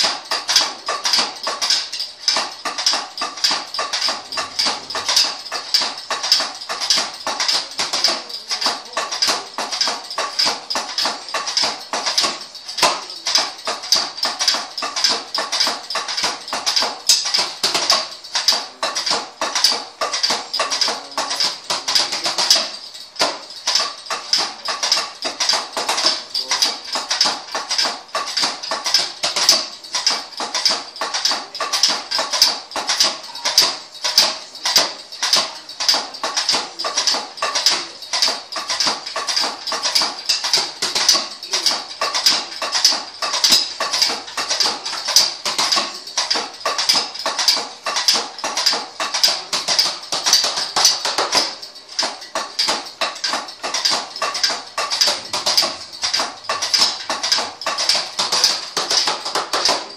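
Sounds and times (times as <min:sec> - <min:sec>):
sticks tapping on drum pads: 0:00.0 - 0:59.9.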